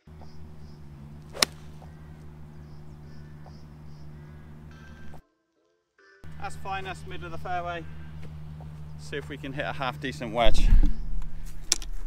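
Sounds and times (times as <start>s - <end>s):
golf club striking ball: 0.2s - 5.2s.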